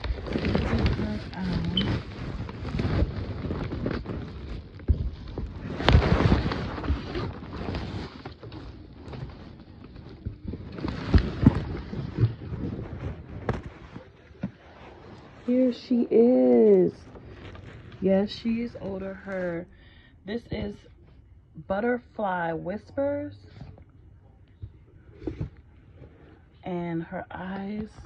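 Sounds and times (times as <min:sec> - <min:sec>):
rustling of clothing and packaging: 0:00.0 - 0:21.4, 0:22.2 - 0:28.0.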